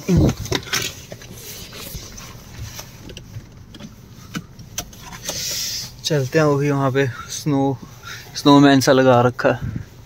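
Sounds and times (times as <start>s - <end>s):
low steady car cabin rumble: 0.0s - 10.0s.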